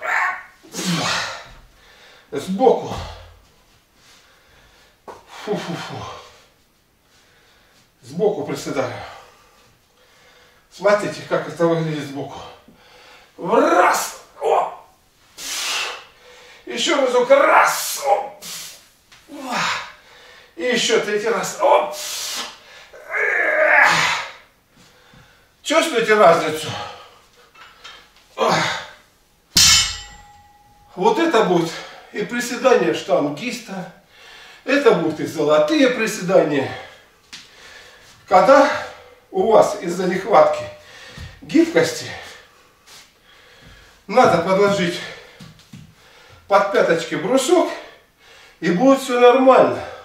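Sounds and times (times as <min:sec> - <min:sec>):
man breathing hard: 0:01.1 - 0:02.3, 0:12.6 - 0:13.4, 0:19.4 - 0:20.6, 0:24.8 - 0:25.6, 0:40.8 - 0:41.4, 0:43.2 - 0:44.1, 0:45.2 - 0:46.5
man breathing forcefully: 0:43.2 - 0:44.1.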